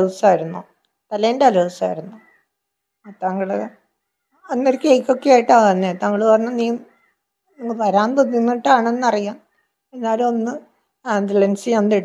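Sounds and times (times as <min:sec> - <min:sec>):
woman speaking: 0:00.0 - 0:02.3, 0:03.1 - 0:03.9, 0:04.5 - 0:06.9, 0:07.6 - 0:12.0.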